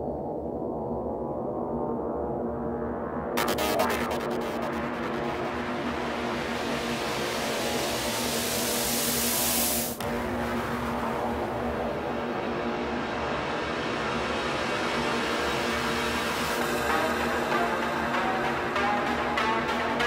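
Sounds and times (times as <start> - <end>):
rising white-noise sweep: 1.1 - 18.0
falling noise sweep: 3.2 - 12.6
held synth tones: 3.4 - 6.6.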